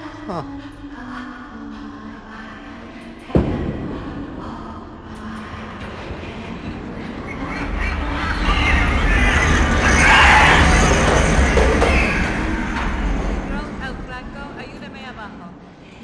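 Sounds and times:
loud thud: 3.3 - 4.9.

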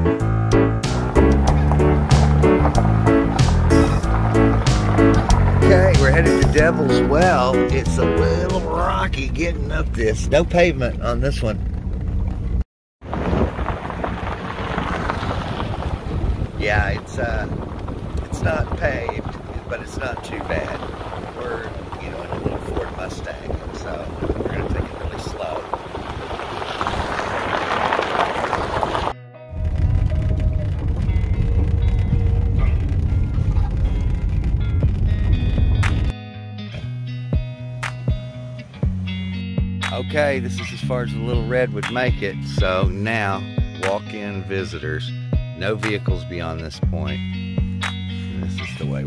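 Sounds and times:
music with strong bass: 0.0 - 10.1, 29.2 - 49.0
engine and road rumble: 0.0 - 49.0
tyres crunching on gravel: 0.8 - 36.1.

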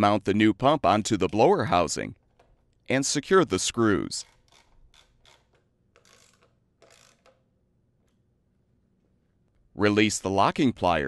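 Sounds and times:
ratchet wrench clicking: 4.2 - 7.4.

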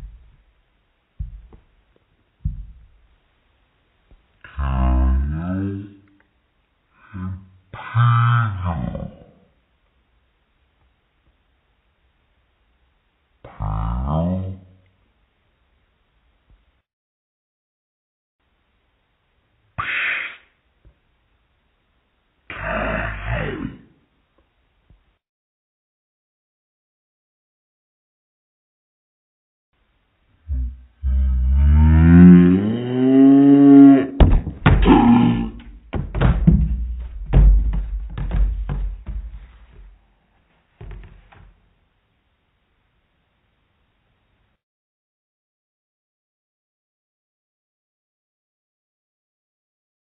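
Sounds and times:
deep drawn-out voice-like call: 4.4 - 6.1, 7.0 - 9.5, 13.5 - 14.7, 19.8 - 20.5, 22.5 - 24.0, 30.4 - 35.8.

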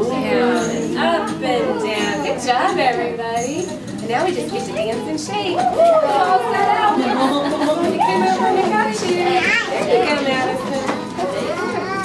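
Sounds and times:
toddlers and adults chattering: 0.0 - 12.0
child's high voice: 9.4 - 9.9, 11.2 - 12.0.

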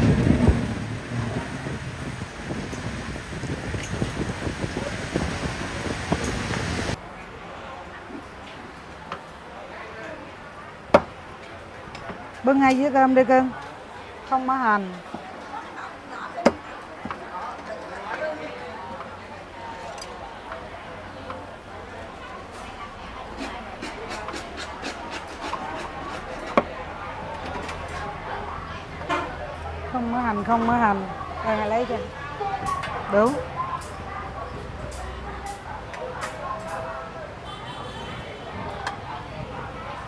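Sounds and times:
background chatter: 0.0 - 40.0.

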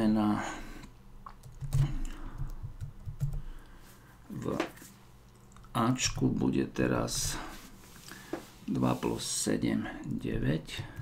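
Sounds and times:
typing on computer keyboard: 1.4 - 3.5.

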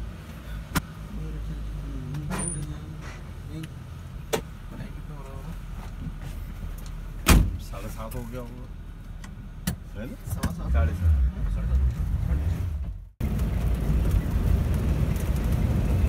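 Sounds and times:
vehicle engine and road rumble: 0.0 - 16.0.

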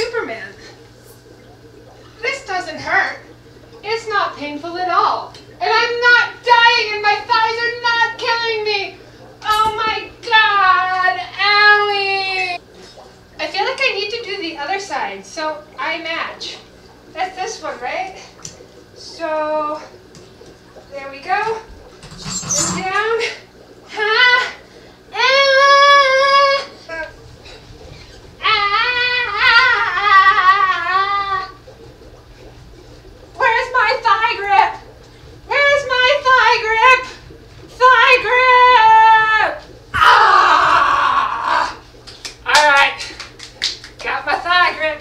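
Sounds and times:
woman's wavering cry: 28.4 - 31.5, 40.0 - 41.8.

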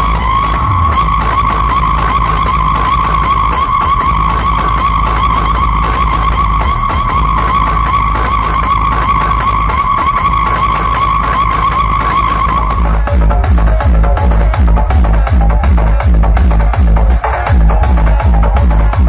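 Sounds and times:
deep bass: 0.0 - 19.0.

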